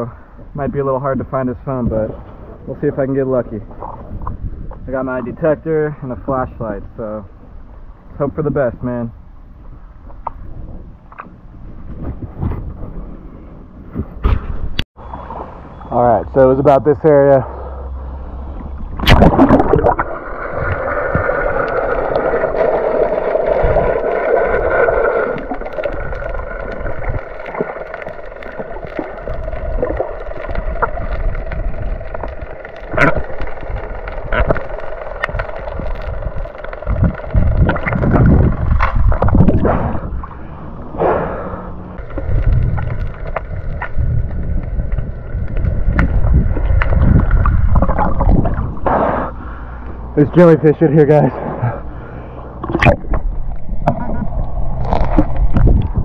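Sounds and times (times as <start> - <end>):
faint steady hum: 0.0 - 56.0
low underwater rumbling: 1.7 - 5.4, 17.5 - 50.2, 51.5 - 56.0
underwater water gurgling: 18.4 - 50.1, 51.6 - 56.0.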